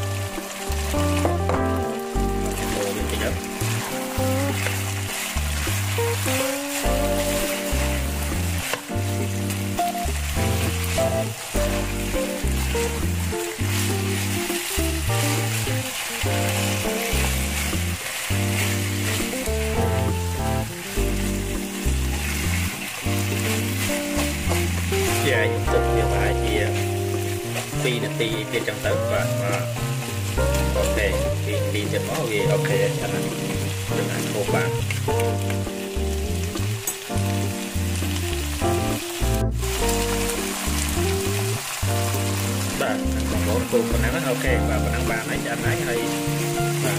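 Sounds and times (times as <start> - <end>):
music with repeating bass beat: 0.0 - 28.2, 28.9 - 31.8, 32.7 - 45.0
food sizzling in a wok: 0.0 - 46.9
spatula stirring in a wok: 2.4 - 20.2, 21.0 - 25.4, 26.2 - 31.0.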